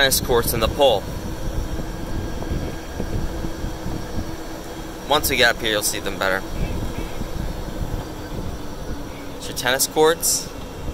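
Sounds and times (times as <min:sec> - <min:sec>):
faint steady hum: 0:00.0 - 0:10.9
tyres rumbling on road: 0:00.0 - 0:10.9
wind: 0:00.0 - 0:10.9.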